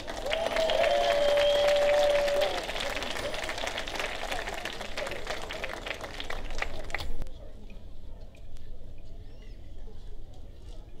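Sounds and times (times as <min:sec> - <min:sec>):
audience applauding: 0:00.0 - 0:07.1
crowd whooping: 0:00.1 - 0:03.6.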